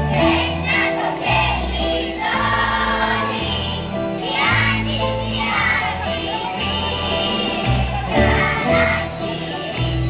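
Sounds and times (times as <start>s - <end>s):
acoustic guitar: 0.0s - 10.0s
bouzoukis: 0.0s - 10.0s
children's choir singing: 0.0s - 10.0s.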